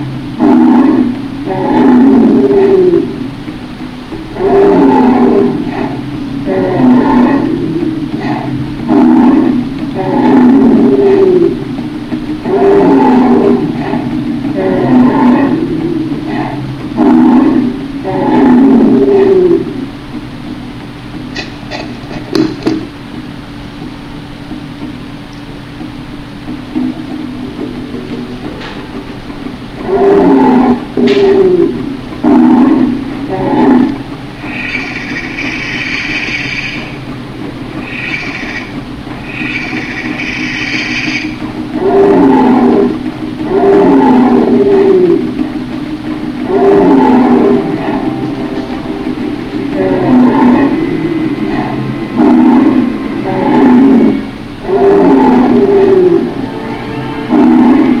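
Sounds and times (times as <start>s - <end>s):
steady low hum: 0.0s - 58.0s
monster-like roars: 0.4s - 3.3s, 4.3s - 11.6s, 12.4s - 19.8s, 29.8s - 36.4s, 39.2s - 45.4s, 46.4s - 48.3s, 49.1s - 56.3s, 57.2s - 58.0s
high shrieking calls: 34.4s - 37.0s, 37.8s - 41.4s.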